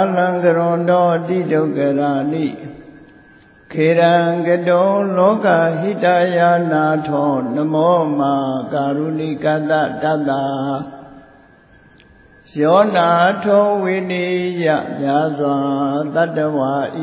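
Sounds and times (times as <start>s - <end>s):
man chanting: 0.0s - 3.0s, 3.7s - 11.2s, 12.4s - 17.0s.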